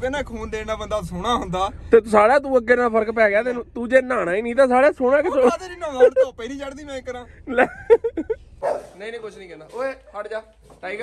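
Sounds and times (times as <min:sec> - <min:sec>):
man laughing high-pitched: 0:05.1 - 0:06.9, 0:07.5 - 0:08.4.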